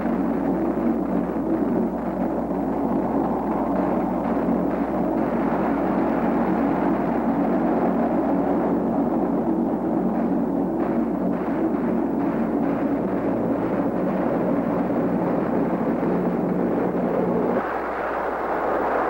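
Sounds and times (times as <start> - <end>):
aircraft engines droning: 0.0 - 19.0.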